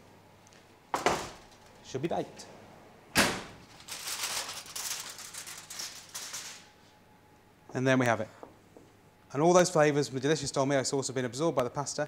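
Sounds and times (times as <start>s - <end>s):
aluminium foil crinkling: 3.6s - 6.8s.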